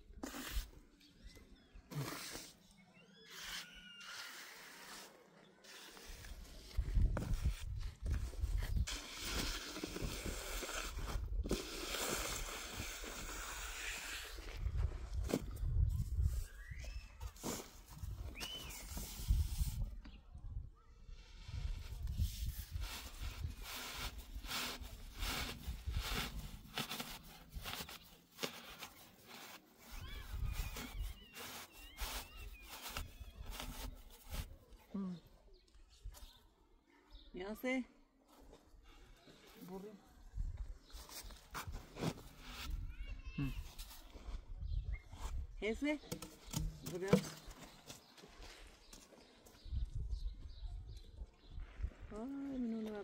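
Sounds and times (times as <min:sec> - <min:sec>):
trowel scraping wet concrete: 0:00.1 - 0:00.8, 0:01.9 - 0:06.6, 0:08.8 - 0:14.5.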